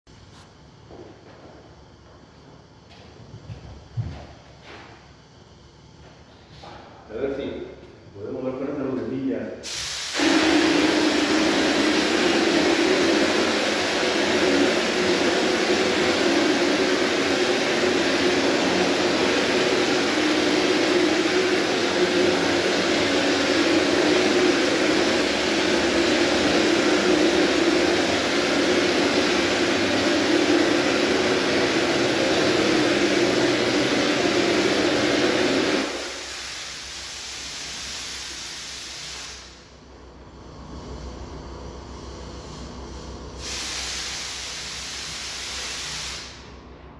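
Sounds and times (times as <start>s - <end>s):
spray gun hissing: 9.6s - 39.7s, 42.0s - 46.5s.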